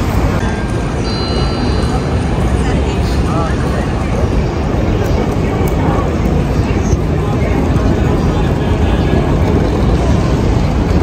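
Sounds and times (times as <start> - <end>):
busy station plaza noise: 0.0 - 11.0
passers-by's voices: 0.0 - 11.0.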